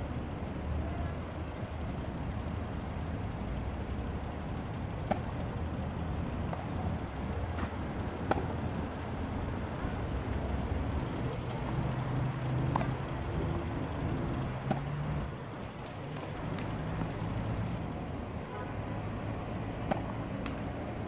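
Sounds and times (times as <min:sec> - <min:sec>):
road traffic hum: 0:00.0 - 0:21.0
vehicle engine droning: 0:00.0 - 0:21.0
racket hitting tennis ball: 0:05.0 - 0:05.4, 0:07.5 - 0:08.7, 0:12.6 - 0:13.1, 0:14.3 - 0:15.2, 0:19.7 - 0:21.0.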